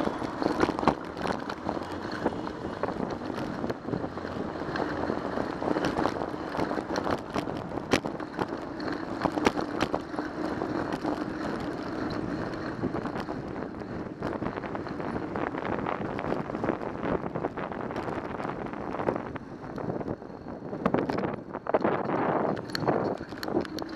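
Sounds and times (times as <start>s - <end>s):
bike rattling clicks and knocks: 0.0s - 23.9s
tyre and road noise: 0.0s - 23.9s
wind on microphone: 0.0s - 23.9s.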